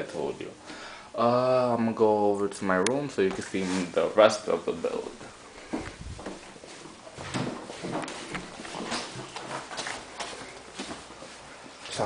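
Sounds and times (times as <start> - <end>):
footsteps walking indoors: 3.2 - 12.0.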